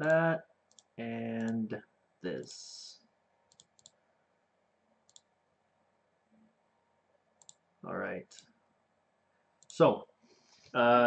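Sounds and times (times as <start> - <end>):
computer mouse clicks: 0.0 - 1.6, 3.5 - 4.0, 5.1 - 5.3, 7.4 - 7.6, 9.6 - 9.8.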